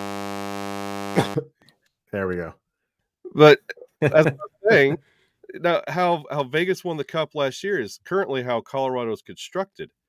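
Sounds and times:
electrical mains buzz: 0.0s - 1.4s
person laughing: 3.5s - 5.7s.

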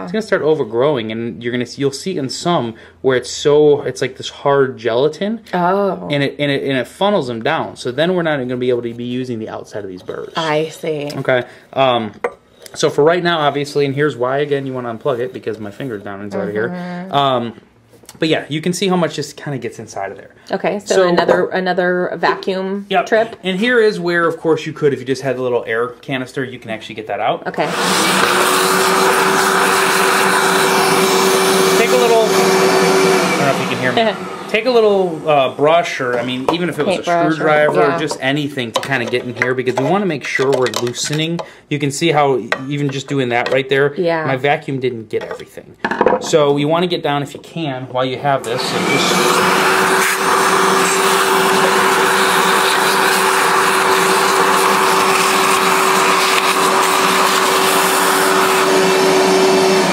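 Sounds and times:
vacuum cleaner running: 27.5s - 38.4s, 48.2s - 59.9s.

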